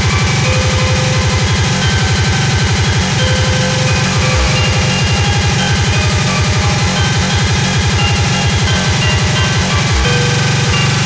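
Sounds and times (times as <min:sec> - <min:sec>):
distorted kick drum hammering: 0:00.0 - 0:11.0
harsh synth noise: 0:00.0 - 0:11.0.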